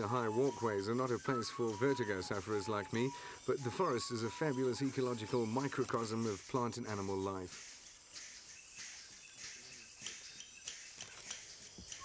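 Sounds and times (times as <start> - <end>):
bird chirps: 0.0 - 12.0
insects hissing: 0.0 - 12.0.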